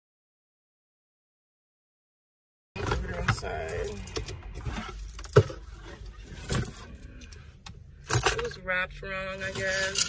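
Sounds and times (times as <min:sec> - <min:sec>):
low hum inside a car: 0:02.8 - 0:10.0.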